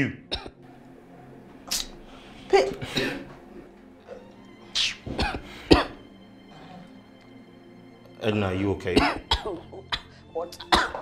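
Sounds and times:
woman coughing: 2.5s - 3.4s, 4.1s - 6.0s, 9.0s - 11.0s.

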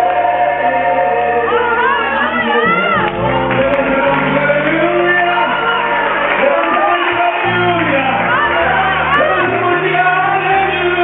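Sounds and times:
gospel choir singing: 0.0s - 11.0s
instrumental accompaniment: 0.0s - 11.0s.

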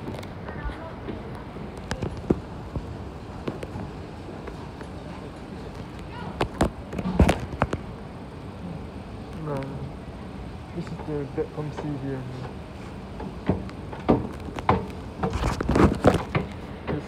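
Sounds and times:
steady background hum: 0.0s - 17.0s
sharp knocks: 13.2s - 17.0s.

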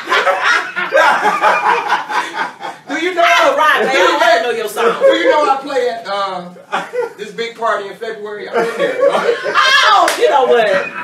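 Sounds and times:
people laughing: 0.0s - 5.8s, 6.6s - 7.2s, 8.5s - 11.0s.

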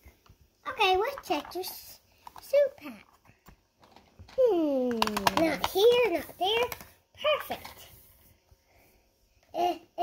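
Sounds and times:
plastic toys clicking: 3.8s - 7.8s
child making play noises: 5.0s - 7.6s.

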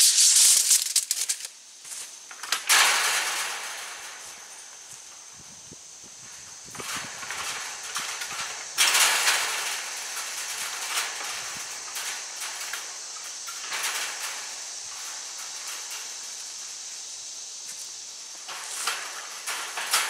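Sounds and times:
wire mesh rattling and scraping: 0.0s - 1.5s, 2.2s - 20.0s.

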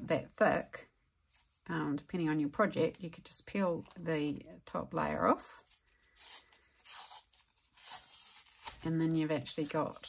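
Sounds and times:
carton tearing papery rips: 6.3s - 8.8s.

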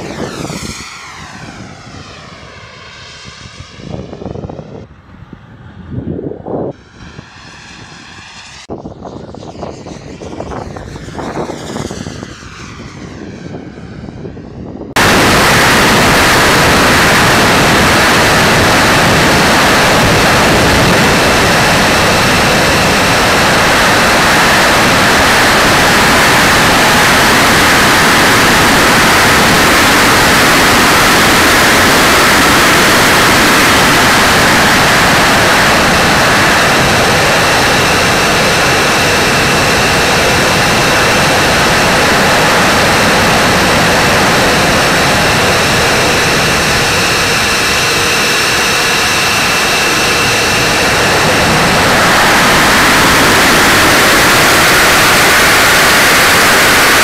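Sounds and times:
model plane engine rushing: 0.0s - 57.0s.

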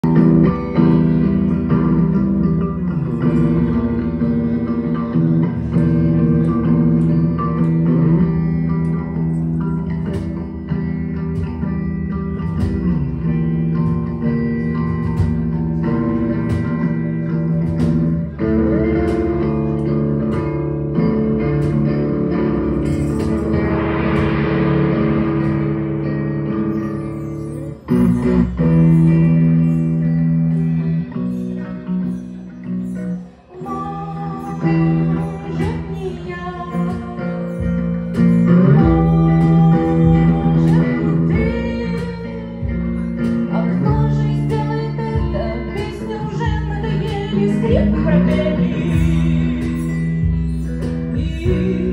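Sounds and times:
electric guitar picking notes: 0.0s - 51.9s
sustained low drone: 22.5s - 27.2s
hissing swell: 22.5s - 28.1s.

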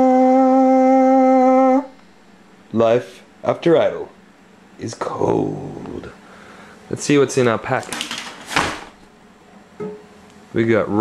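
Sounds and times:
voice holding a long note: 0.0s - 2.0s.

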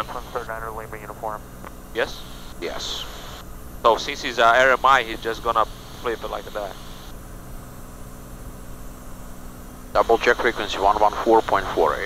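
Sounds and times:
aircraft engine and propeller drone: 0.0s - 12.0s.

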